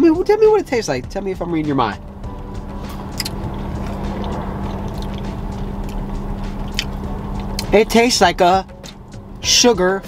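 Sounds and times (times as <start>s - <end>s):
low hum in car cabin: 0.0s - 10.0s
person chewing: 2.8s - 7.7s.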